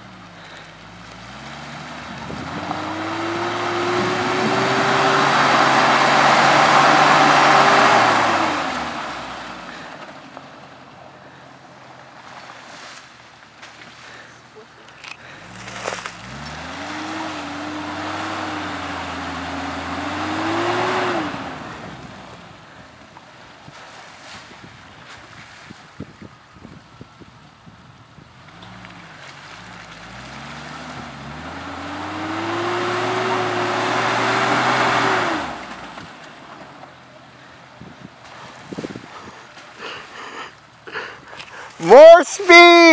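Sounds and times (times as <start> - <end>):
wheels churning in mud: 0.0 - 24.3, 28.4 - 42.9
engine revving hard: 1.2 - 9.9, 15.4 - 22.2, 30.0 - 36.0.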